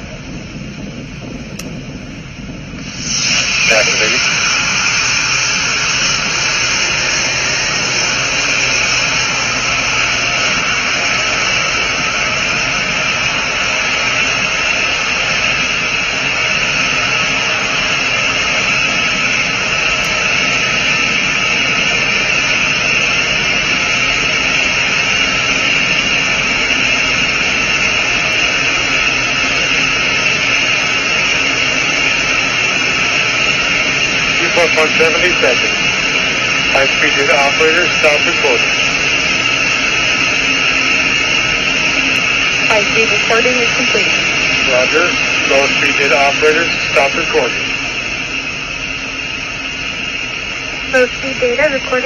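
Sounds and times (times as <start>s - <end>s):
rocket booster roaring: 0.0s - 52.0s.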